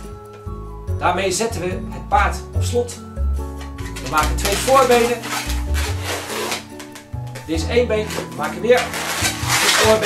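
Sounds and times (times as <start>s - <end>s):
background music: 0.0s - 10.0s
balloon squeaking and rubbing: 3.7s - 7.4s, 8.0s - 10.0s.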